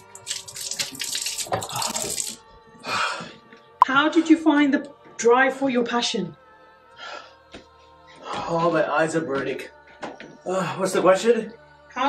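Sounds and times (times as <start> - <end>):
faucet running into metal sink: 0.0 - 2.4
water splashing: 0.0 - 2.4.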